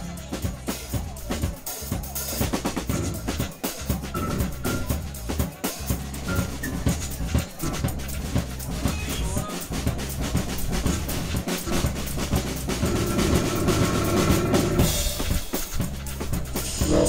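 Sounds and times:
drum kit groove: 0.0s - 17.0s
synth bass: 2.6s - 17.0s.

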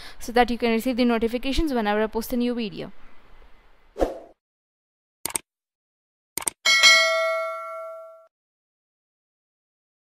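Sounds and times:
notification bell chime: 6.7s - 8.3s.

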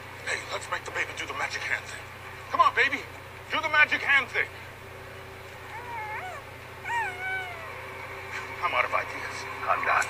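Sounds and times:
high-pitched cooing calls: 5.7s - 7.8s.

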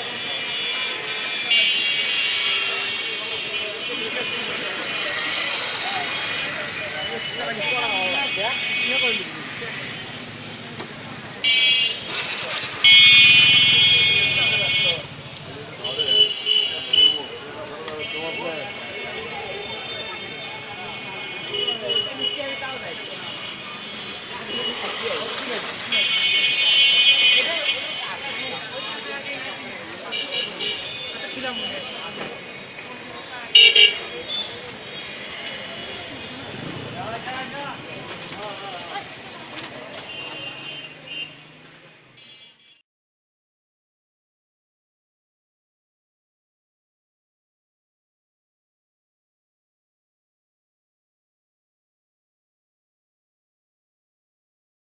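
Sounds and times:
people talking: 0.0s - 42.0s
traffic: 0.0s - 42.8s
vehicle horns honking: 0.1s - 10.2s, 11.4s - 15.2s, 15.8s - 17.4s, 18.0s - 29.0s, 30.1s - 32.6s, 33.5s - 36.4s, 40.0s - 41.5s, 42.1s - 42.8s.

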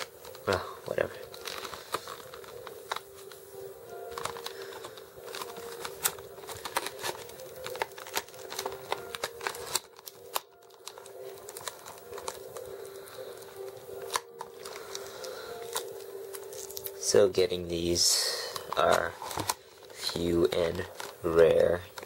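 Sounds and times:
plastic packaging crinkling: 0.0s - 22.0s.

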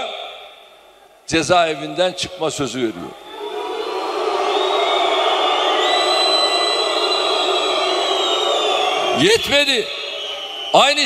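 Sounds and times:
crowd shouting: 3.1s - 11.0s
long high whistles: 3.2s - 11.0s.

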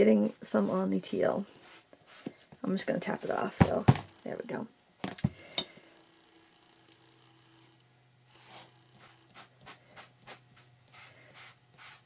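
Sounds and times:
sponge rubbing on paper: 8.3s - 12.0s.

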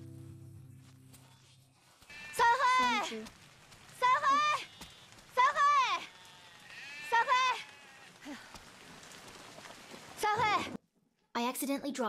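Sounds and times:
goats bleating: 2.1s - 3.3s, 4.0s - 8.5s
woman shouting: 2.4s - 3.2s, 4.0s - 4.7s, 5.4s - 6.1s, 7.1s - 7.6s.

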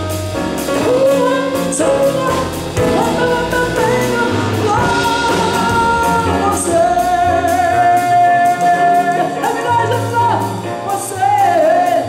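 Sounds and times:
double bass: 0.0s - 12.0s
drum kit with cymbals: 0.0s - 12.0s
piano: 0.0s - 12.0s
woman singing jazz: 0.0s - 12.0s.

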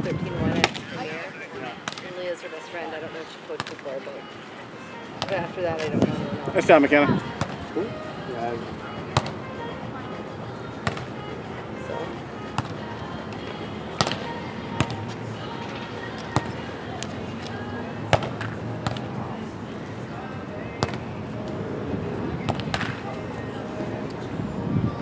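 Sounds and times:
murmur of voices: 0.0s - 25.0s
volleyball being struck: 1.8s - 2.1s, 5.2s - 5.5s, 9.2s - 9.4s, 10.8s - 11.1s, 12.6s - 12.8s, 14.0s - 15.0s, 18.1s - 19.1s, 20.8s - 21.0s, 22.5s - 23.0s.

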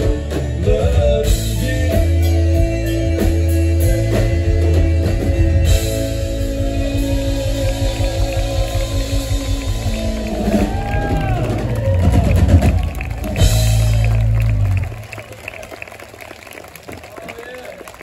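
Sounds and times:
drum fill: 0.0s - 14.9s
country band playing: 0.0s - 15.2s
audience cheering and applauding: 6.1s - 18.0s.

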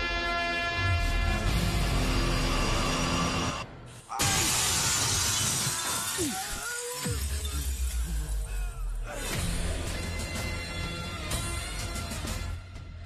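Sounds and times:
soundtrack music: 0.0s - 4.2s, 7.1s - 13.0s
glass pane shattering: 4.2s - 8.1s.

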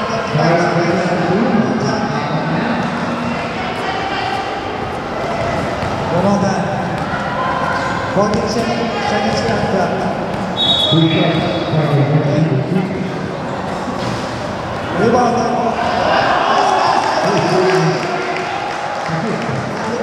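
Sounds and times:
basketballs bouncing on court: 5.2s - 7.4s, 8.2s - 10.6s
short high whistle blast: 10.6s - 11.2s.

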